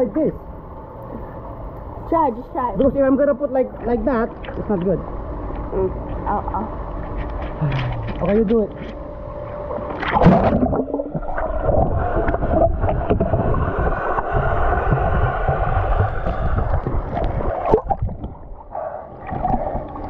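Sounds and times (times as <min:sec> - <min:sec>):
muffled underwater gurgle: 0:03.7 - 0:20.0.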